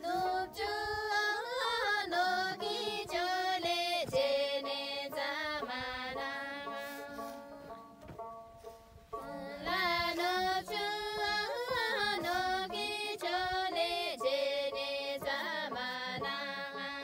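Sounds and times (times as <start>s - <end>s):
woman singing: 0.0s - 7.8s, 9.2s - 17.0s
light instrumental accompaniment: 0.0s - 17.0s.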